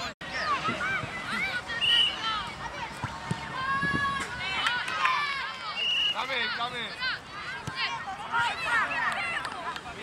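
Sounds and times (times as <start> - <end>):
children shouting: 0.2 - 9.6.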